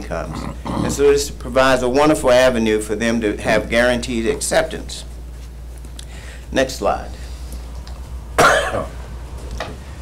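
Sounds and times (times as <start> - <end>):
steady low hum: 0.0 - 10.0
man coughing: 8.4 - 9.0.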